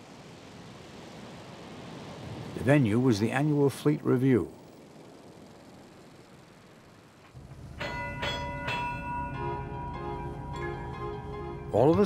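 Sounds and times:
telegraph bell ringing: 7.6s - 12.0s.

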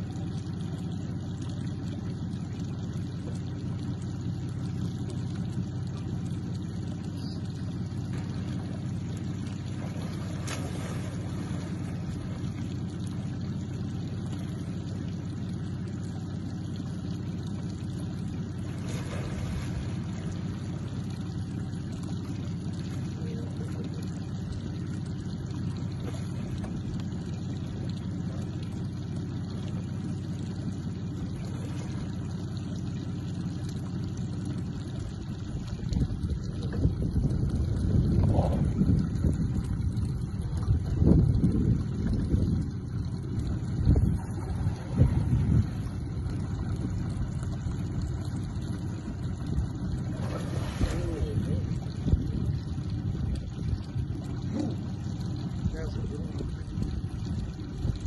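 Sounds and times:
boat motor idling: 0.0s - 58.0s
wind buffeting microphone: 35.7s - 55.0s.

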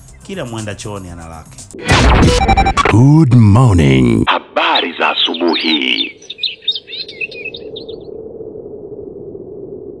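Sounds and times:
small birds chirping: 4.6s - 8.1s.

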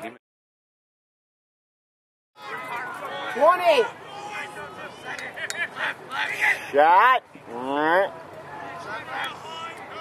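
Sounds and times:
spectators talking: 2.4s - 10.0s.

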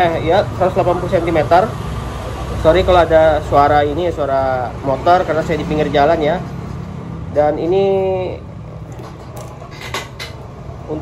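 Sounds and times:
motorbike traffic rumble: 0.0s - 11.0s.

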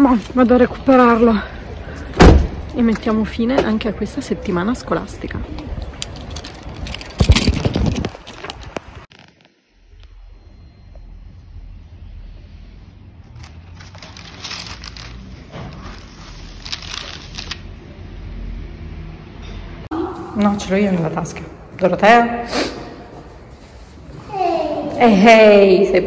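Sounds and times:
street noise: 0.0s - 26.0s
album pages rustling: 7.2s - 9.7s, 13.4s - 17.7s.

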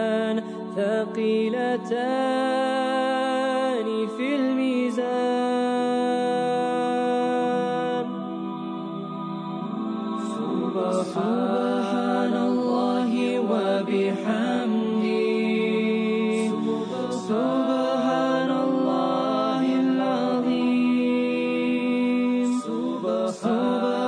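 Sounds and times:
voice chanting wordless melody: 0.0s - 24.0s.

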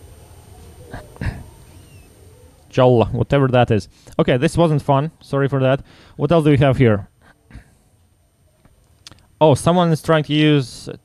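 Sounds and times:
person murmuring: 0.9s - 1.6s.

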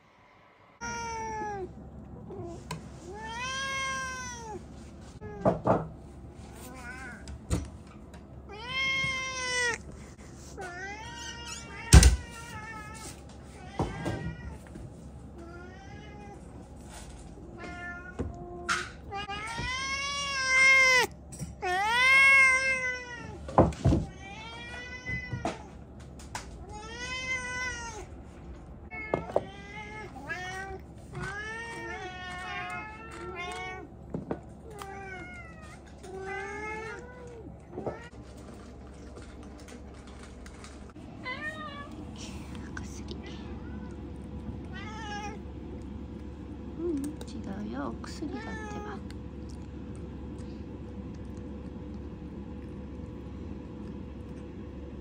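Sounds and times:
cats meowing: 8.5s - 9.9s, 17.4s - 23.4s, 28.9s - 34.0s, 34.6s - 38.2s, 43.3s - 45.5s, 48.2s - 49.1s.

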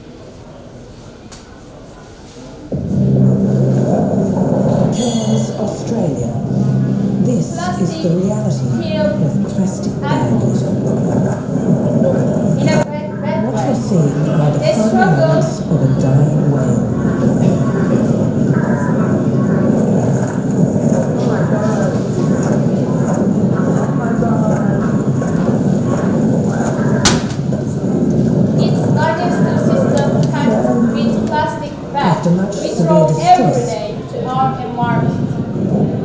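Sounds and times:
faint voices: 0.0s - 36.0s
deep droning tone over speakers: 2.6s - 36.0s
low rumble from loudspeakers: 2.7s - 36.0s.

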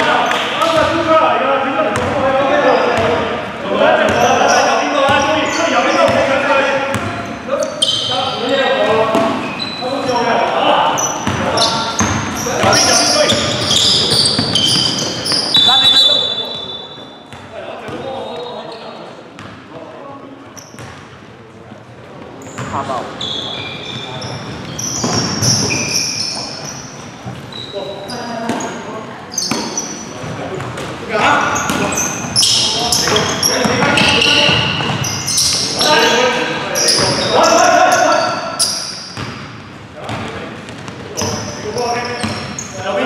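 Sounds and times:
sneakers squeaking: 0.0s - 1.1s, 1.9s - 19.7s, 20.4s - 21.3s, 22.2s - 43.0s
players calling out: 0.0s - 17.1s, 22.4s - 40.4s.

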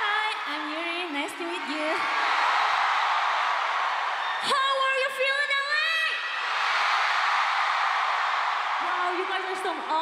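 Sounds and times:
crowd cheering and screaming: 0.0s - 4.8s, 6.1s - 10.0s.

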